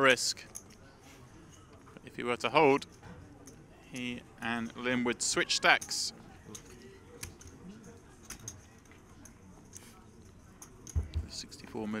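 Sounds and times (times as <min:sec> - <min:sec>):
faint murmur of distant voices: 0:00.0 - 0:12.0.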